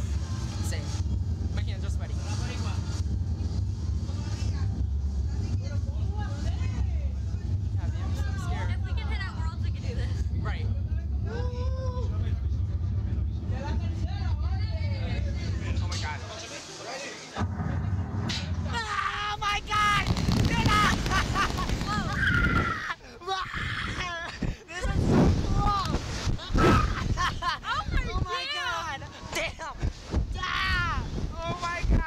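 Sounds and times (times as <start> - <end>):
low mechanical rumble: 0.0 - 16.3, 17.4 - 32.0.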